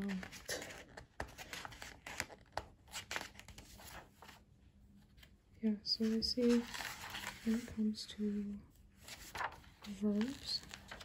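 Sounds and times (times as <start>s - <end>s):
paper pages rustling: 0.0s - 4.4s, 5.0s - 8.0s, 9.0s - 11.0s.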